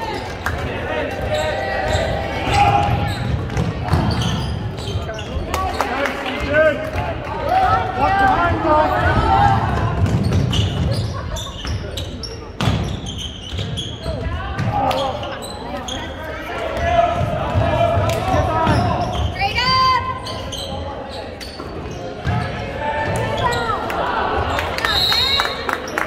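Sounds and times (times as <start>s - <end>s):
sneaker squeaks: 0.0s - 6.0s, 9.8s - 16.5s, 18.3s - 23.8s.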